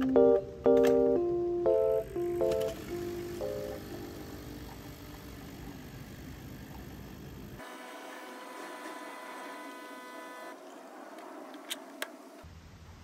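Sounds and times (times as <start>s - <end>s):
coffee machine humming and whining: 2.0s - 11.1s.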